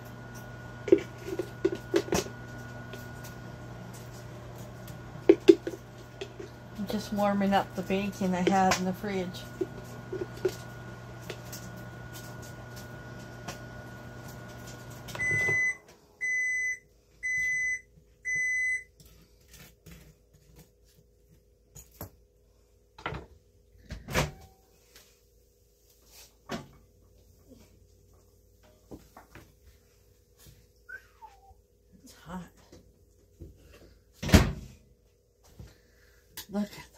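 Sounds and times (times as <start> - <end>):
microwave oven humming: 0.0 - 18.9
loud microwave beeps: 15.1 - 18.9.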